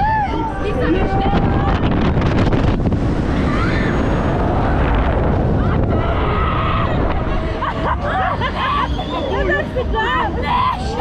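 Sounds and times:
wind rumble on microphone: 0.0s - 8.7s.

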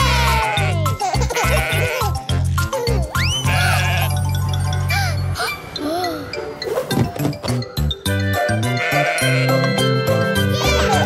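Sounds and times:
cartoon sheep bleating: 0.0s - 2.1s, 3.4s - 4.2s, 8.6s - 9.8s
bouncy children's song music: 0.0s - 11.0s.

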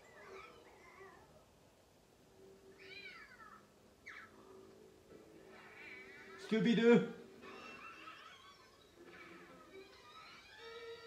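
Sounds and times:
cat meowing: 2.8s - 4.3s.

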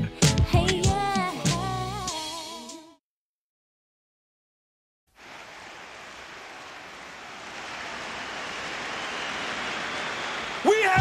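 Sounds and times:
hiss-like noise swell: 5.1s - 10.9s.

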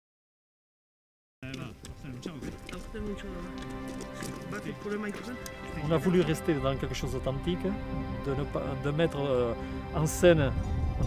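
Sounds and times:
footsteps on gravel: 1.4s - 6.7s
background music: 1.4s - 11.0s.

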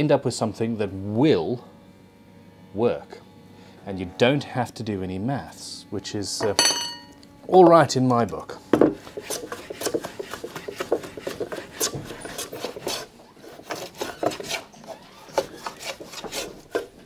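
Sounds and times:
hand plane shaving wood: 8.9s - 17.0s.

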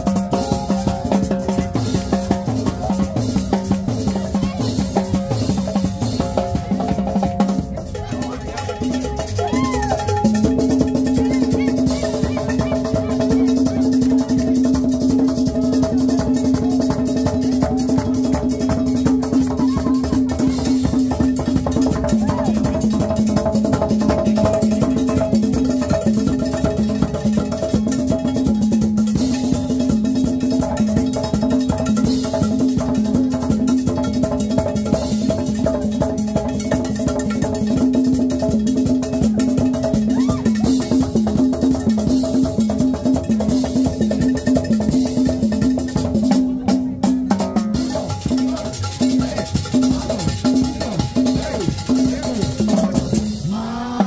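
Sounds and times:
driving drums and percussion: 0.0s - 54.0s
live dance band music: 47.7s - 54.0s.

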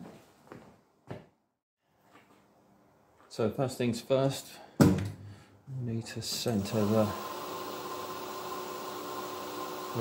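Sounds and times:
steady machine hum: 6.6s - 10.0s.

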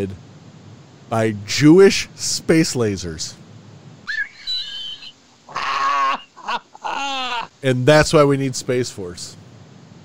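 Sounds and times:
man laughing hard: 4.1s - 7.6s.

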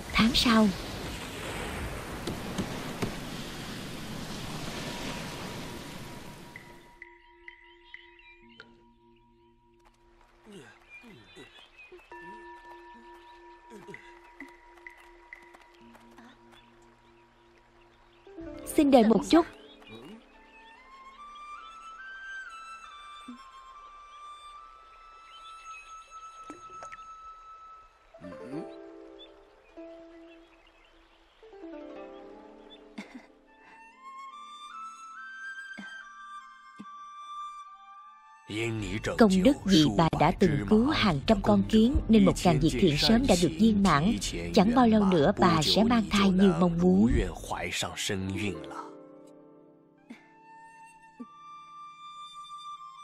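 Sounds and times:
heavy rain: 0.0s - 6.8s.

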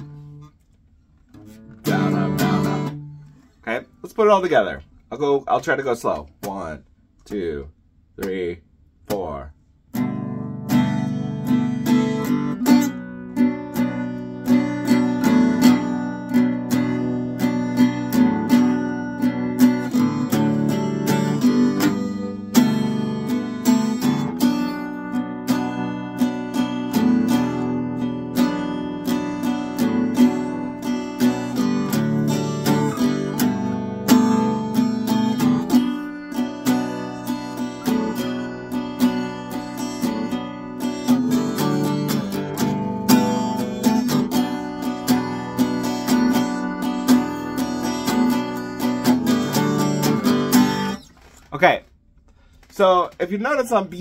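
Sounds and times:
acoustic guitar strumming: 0.0s - 6.7s, 8.2s - 51.7s.

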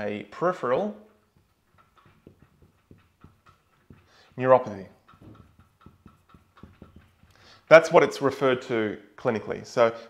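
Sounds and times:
marker squeaking on whiteboard: 1.0s - 7.8s.

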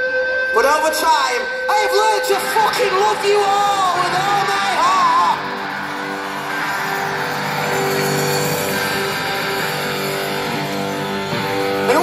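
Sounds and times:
arena crowd noise: 0.6s - 12.0s
guitar sustained chord: 1.6s - 12.0s.

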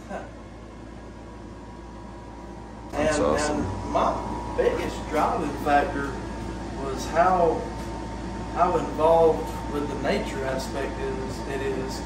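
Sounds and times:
air conditioner humming: 0.0s - 12.0s.

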